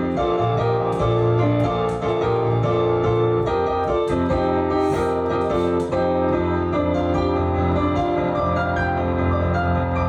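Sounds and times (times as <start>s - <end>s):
solo piano chords: 0.0s - 10.0s.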